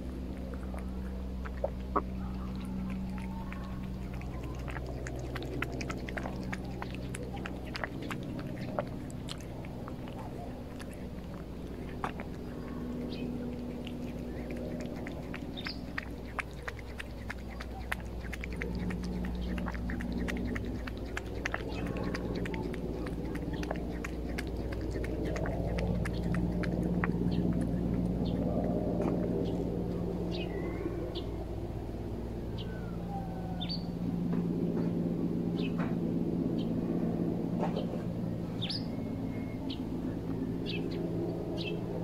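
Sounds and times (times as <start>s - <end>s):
cat chewing and licking: 0.0s - 30.4s
small birds chirping: 0.0s - 31.4s, 32.6s - 34.0s, 37.7s - 42.0s
low steady hum: 0.0s - 42.0s.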